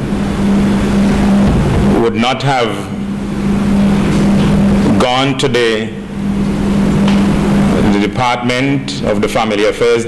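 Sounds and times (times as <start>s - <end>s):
steady low hum: 0.0s - 10.0s
even rushing noise: 0.3s - 5.0s.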